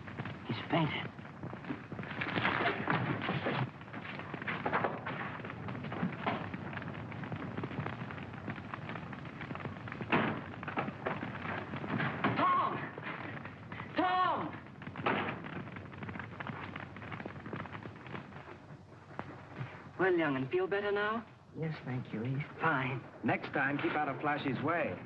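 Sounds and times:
fire crackling and popping: 0:00.0 - 0:25.0.

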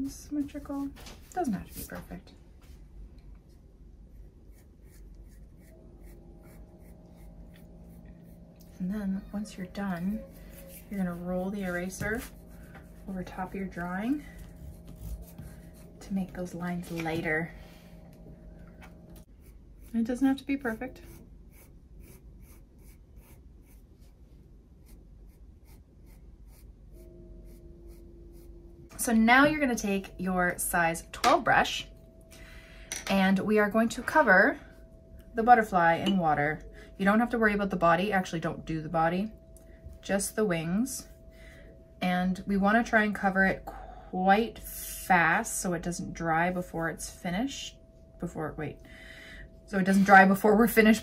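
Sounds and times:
faint steady hum: 0:00.0 - 0:51.0
pencil scratching on paper: 0:04.2 - 0:08.4, 0:09.2 - 0:17.4, 0:19.2 - 0:24.2, 0:24.8 - 0:28.5.

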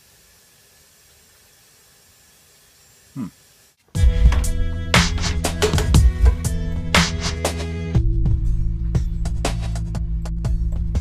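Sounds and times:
gas burner hissing: 0:00.0 - 0:03.8.

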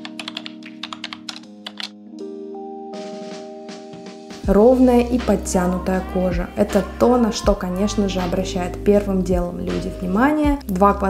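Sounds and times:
rapid keyboard typing clicks: 0:00.0 - 0:02.0
music with sustained chords: 0:00.0 - 0:11.0.

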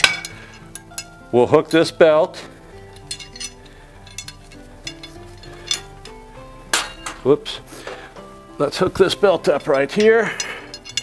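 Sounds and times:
metal hook and buckle clinks: 0:00.0 - 0:01.2, 0:02.8 - 0:07.3, 0:09.7 - 0:11.0
background music with held notes: 0:00.0 - 0:11.0.

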